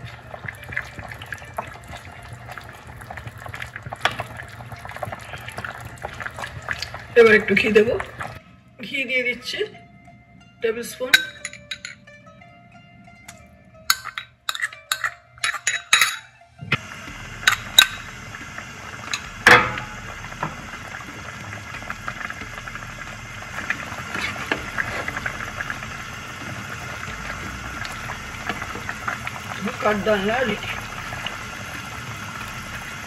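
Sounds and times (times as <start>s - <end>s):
curry bubbling and hissing: 0.0s - 8.4s, 16.8s - 33.0s
metal spoon clinking on pot: 11.1s - 12.0s, 13.3s - 16.3s.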